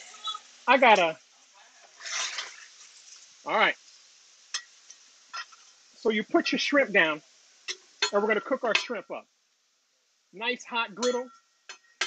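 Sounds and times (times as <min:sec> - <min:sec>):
shellfish sizzling in oil: 0:00.0 - 0:12.0
metal spatula scraping: 0:01.7 - 0:02.6.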